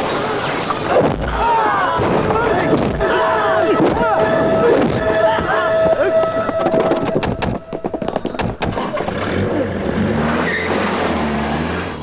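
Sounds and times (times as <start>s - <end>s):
tyre noise: 0.0s - 12.0s
sharp knocks: 3.8s - 9.2s
car engine revving: 8.7s - 12.0s.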